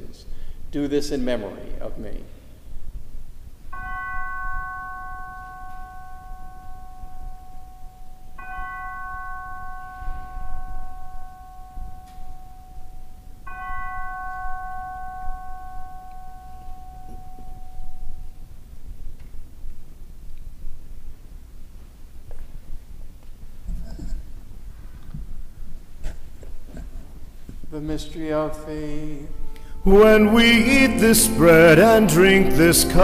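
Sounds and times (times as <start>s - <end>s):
altar bell ringing: 3.7s - 18.7s, 26.7s - 33.0s.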